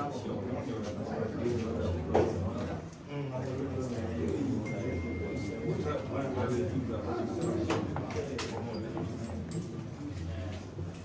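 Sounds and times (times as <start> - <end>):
murmur of overlapping voices: 0.0 - 11.0
thin steady high tone: 4.5 - 6.5.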